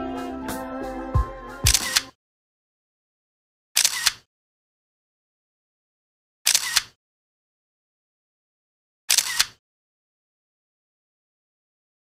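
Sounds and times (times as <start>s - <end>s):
background music with a beat: 0.0s - 2.1s
camera shutter click: 1.7s - 2.1s, 3.8s - 4.2s, 6.5s - 7.0s, 9.1s - 9.6s.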